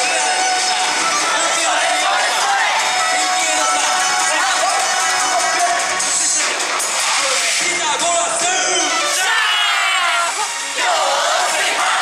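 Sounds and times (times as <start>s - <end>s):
dance music: 0.0s - 12.0s
group of people shouting together: 1.4s - 3.0s, 9.1s - 12.0s.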